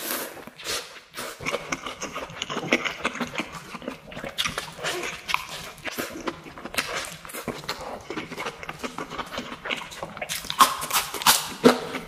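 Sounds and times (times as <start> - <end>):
mouth chewing with clicks and smacks: 0.0 - 12.0.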